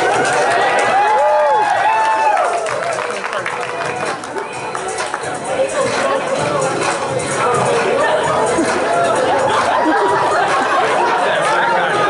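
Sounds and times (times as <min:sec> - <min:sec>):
group shouting and cheering: 0:00.0 - 0:12.0
long drawn-out whoops: 0:00.8 - 0:03.1.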